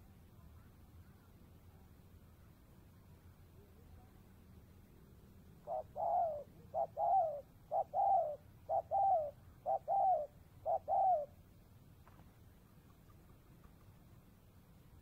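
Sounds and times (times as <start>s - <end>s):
dove cooing: 5.6s - 11.4s.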